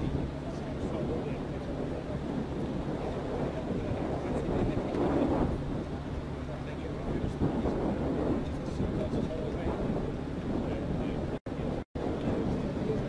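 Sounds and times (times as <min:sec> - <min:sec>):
low outdoor rumble: 0:00.0 - 0:13.0
wind buffeting microphone: 0:00.0 - 0:13.0.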